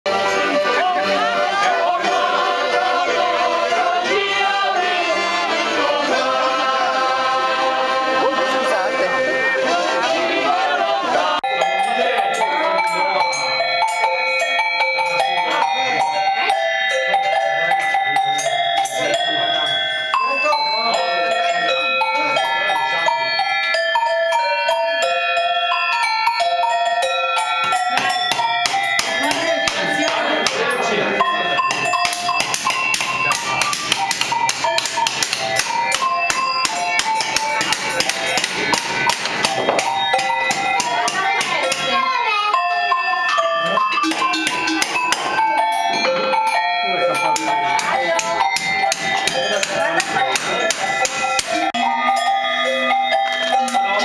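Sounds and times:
tuned cowbells playing melody: 0.1s - 54.0s.

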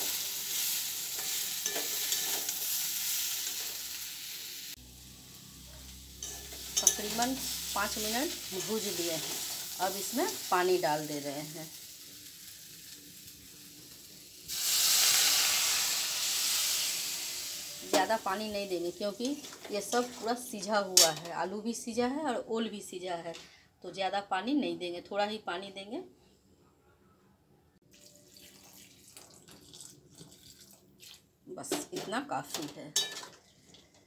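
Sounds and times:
faint sizzle: 0.0s - 21.2s
water trickling into a pot: 27.9s - 31.3s, 33.2s - 34.0s.

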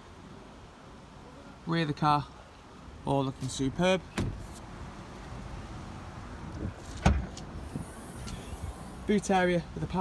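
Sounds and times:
car door thump: 4.1s - 4.6s, 7.0s - 7.4s.

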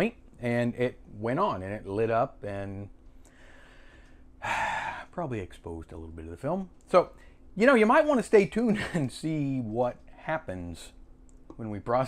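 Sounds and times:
man breathing: 3.1s - 5.1s, 7.2s - 7.5s
man gasping: 3.3s - 5.1s.

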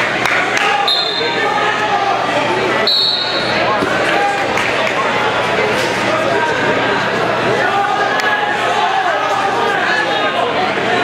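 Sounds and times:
crowd chatter: 0.0s - 11.0s
referee whistle blasts: 0.8s - 1.4s, 2.8s - 3.6s.

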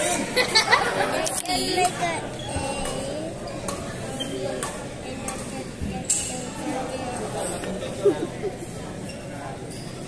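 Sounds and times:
faint chatter echoing: 0.0s - 10.0s.

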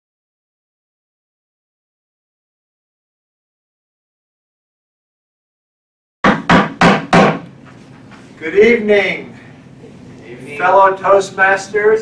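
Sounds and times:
wooden gavel rapping on table: 6.2s - 7.4s.

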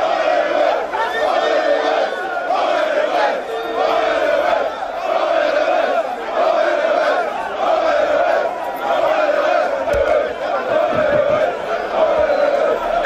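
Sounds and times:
crowd shouting and chanting: 0.0s - 13.0s.

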